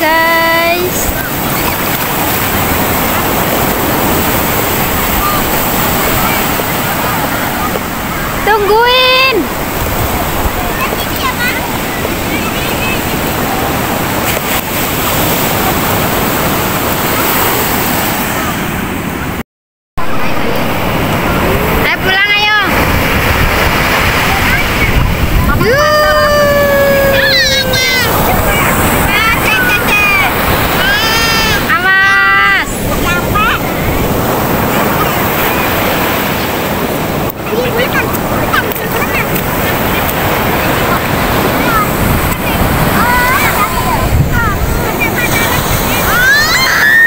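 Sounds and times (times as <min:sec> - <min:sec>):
ocean waves breaking on beach: 0:00.0 - 0:19.4, 0:20.0 - 0:47.0.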